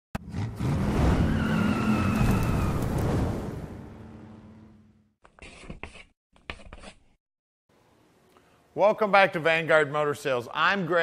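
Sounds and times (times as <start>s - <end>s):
tires squealing: 0.6s - 3.4s.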